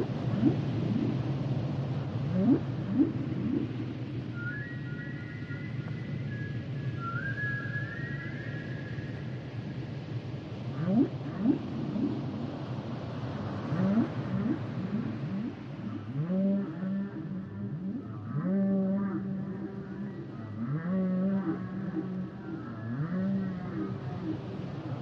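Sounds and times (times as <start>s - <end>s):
humpback whale song: 0.0s - 1.3s, 2.3s - 8.9s, 13.6s - 25.0s.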